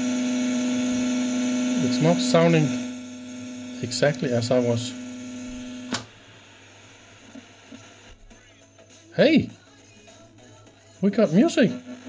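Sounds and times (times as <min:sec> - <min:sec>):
loudspeaker mains hum: 0:00.0 - 0:08.3.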